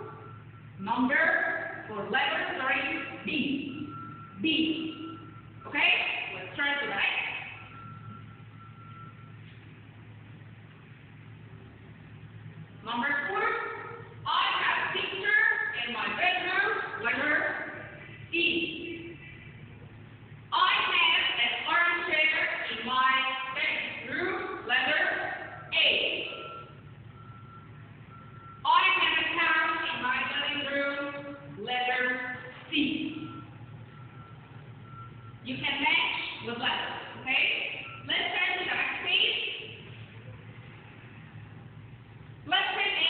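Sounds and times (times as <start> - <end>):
reversing alarm beeping: 0.0 - 10.2, 20.7 - 40.0
low steady hum: 0.0 - 43.0
low steady rumble: 0.0 - 43.0
high electronic beep: 3.6 - 6.4, 25.6 - 28.6, 33.0 - 35.4, 37.7 - 38.6.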